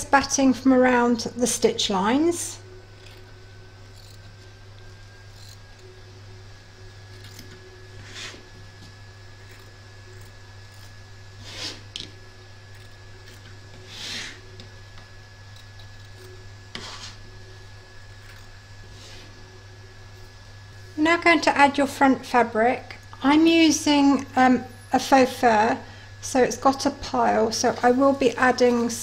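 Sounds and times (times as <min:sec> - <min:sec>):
steady low hum: 0:00.0 - 0:29.0
scissors snipping through fabric: 0:03.9 - 0:04.4, 0:05.3 - 0:05.9, 0:07.2 - 0:08.3, 0:09.4 - 0:11.0, 0:18.2 - 0:18.6.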